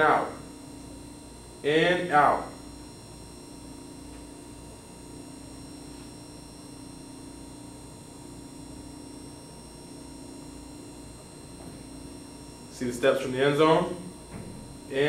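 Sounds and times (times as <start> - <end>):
electrical hum and hiss: 0.0 - 15.0
low buzz: 0.0 - 15.0.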